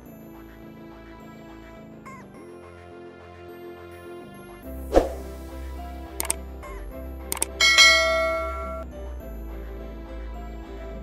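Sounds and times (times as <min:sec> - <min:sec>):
background music: 0:00.0 - 0:11.0
whoosh: 0:04.9 - 0:05.4
mouse clicks: 0:06.2 - 0:06.4, 0:07.4 - 0:07.6
bright bell chime: 0:07.4 - 0:08.8.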